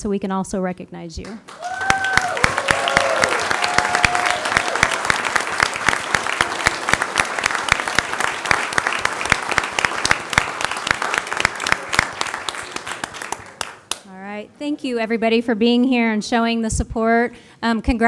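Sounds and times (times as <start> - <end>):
audience applauding: 1.5 - 14.0.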